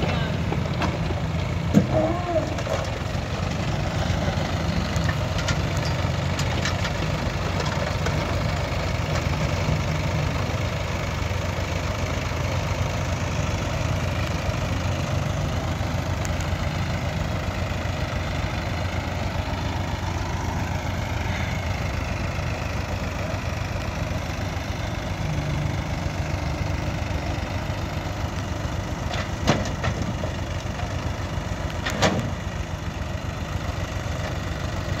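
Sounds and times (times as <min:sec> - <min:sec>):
diesel engine running: 0:00.0 - 0:35.0.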